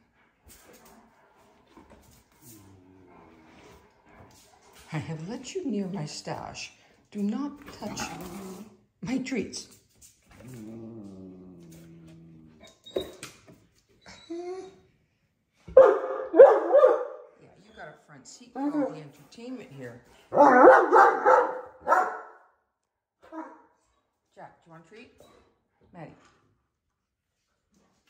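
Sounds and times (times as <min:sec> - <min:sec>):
dog whimpering: 0:14.0 - 0:14.8
dog barking: 0:15.7 - 0:17.3, 0:20.3 - 0:22.4, 0:23.3 - 0:23.7.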